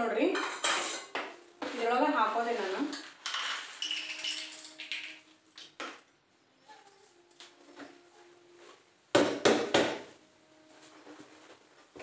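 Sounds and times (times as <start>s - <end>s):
steel plates and bowls clattering: 0.4s - 1.3s, 2.8s - 6.0s.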